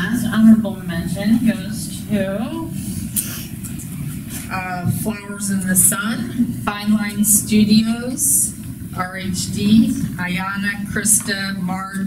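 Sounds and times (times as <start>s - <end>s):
woman speaking: 0.0s - 2.8s, 4.4s - 12.0s.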